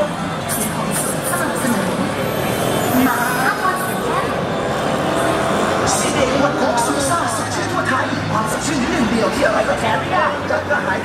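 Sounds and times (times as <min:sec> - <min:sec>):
crowd chatter: 0:00.0 - 0:11.0
traffic rumble: 0:00.0 - 0:11.0.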